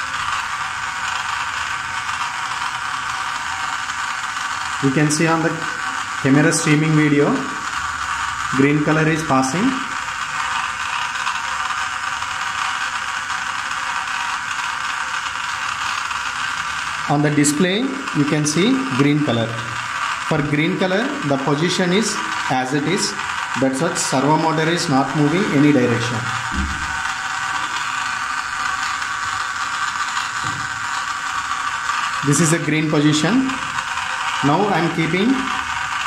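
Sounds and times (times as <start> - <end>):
gear motor mechanical rattle: 0.0 - 36.0.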